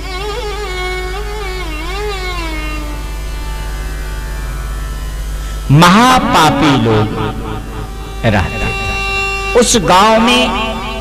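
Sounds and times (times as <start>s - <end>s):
bowed string melody: 0.0s - 11.0s
steady low hum: 0.6s - 11.0s.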